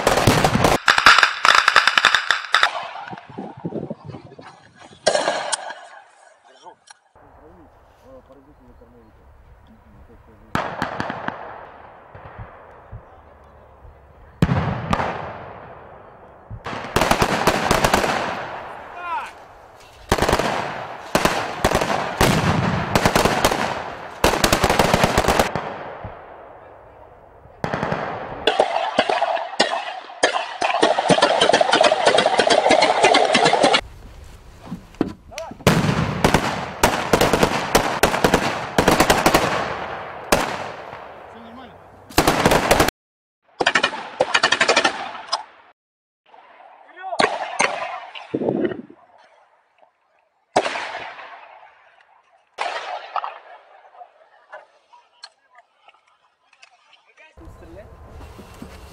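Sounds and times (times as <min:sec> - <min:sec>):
machine gun continuous fire: 0:00.0 - 0:02.8, 0:20.1 - 0:25.8
automatic gunfire bursts: 0:20.1 - 0:25.7.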